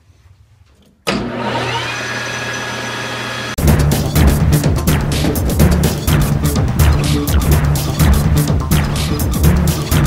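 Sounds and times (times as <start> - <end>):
metal lathe running: 1.1 - 3.6
loud music: 3.6 - 10.0.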